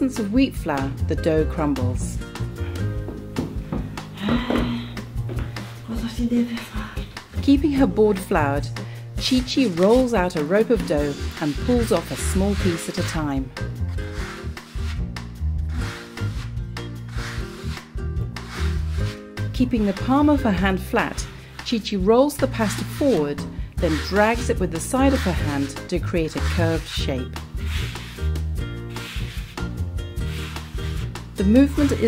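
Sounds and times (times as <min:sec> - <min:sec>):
background music with sustained notes: 0:00.0 - 0:32.0
hand rubbing dough on board: 0:09.2 - 0:15.0, 0:15.7 - 0:21.6, 0:23.8 - 0:32.0.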